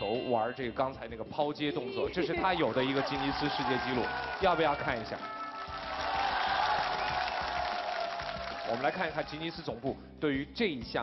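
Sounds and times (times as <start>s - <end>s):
music: 0.0s - 11.0s
audience clapping and cheering: 2.4s - 10.0s.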